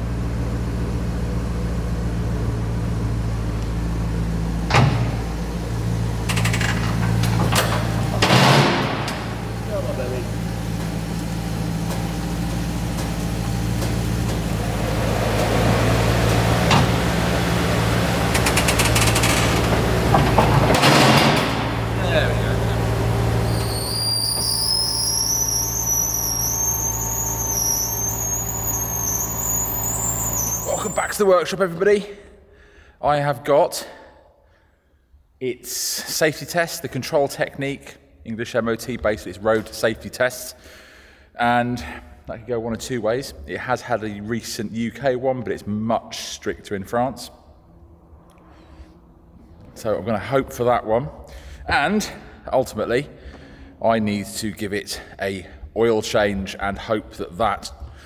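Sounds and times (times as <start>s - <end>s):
car engine idling: 0.0s - 23.9s
vehicle lift whine: 0.0s - 31.7s, 44.5s - 58.0s.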